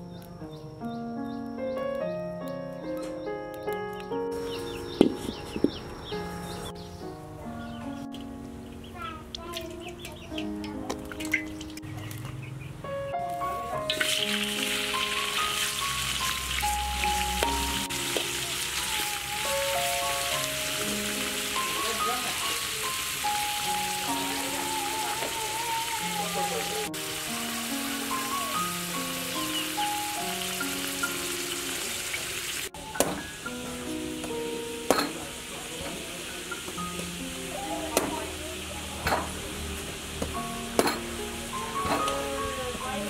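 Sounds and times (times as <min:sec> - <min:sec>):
meat sizzling in a wok: 0:13.9 - 0:43.0.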